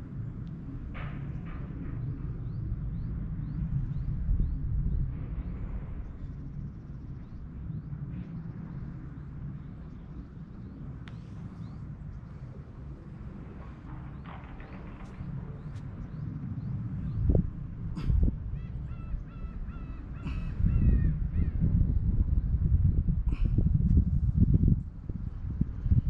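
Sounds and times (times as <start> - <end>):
wind buffeting microphone: 0.0 - 26.0
bird harsh repeated calls: 18.0 - 21.6.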